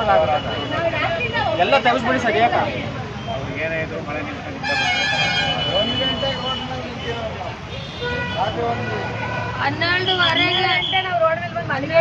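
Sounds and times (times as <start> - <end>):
people talking over one another: 0.0 - 12.0
road traffic: 0.0 - 12.0.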